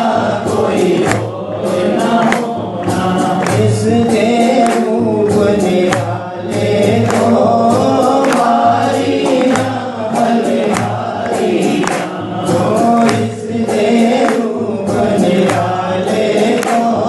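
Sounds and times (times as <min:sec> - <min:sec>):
devotional song with beat: 0:00.0 - 0:17.0.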